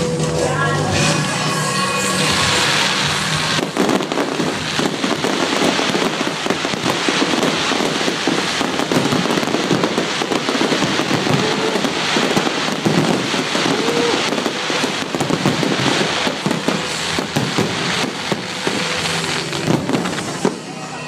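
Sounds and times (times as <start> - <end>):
fireworks popping and banging: 0.0 - 21.0.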